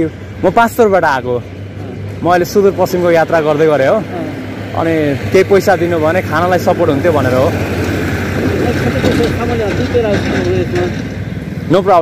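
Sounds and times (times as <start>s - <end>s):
men talking: 0.0s - 12.0s
vehicle engine hum: 0.0s - 12.0s.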